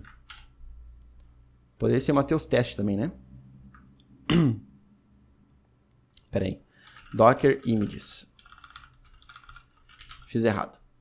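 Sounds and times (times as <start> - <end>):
man clearing throat: 4.2 - 4.7.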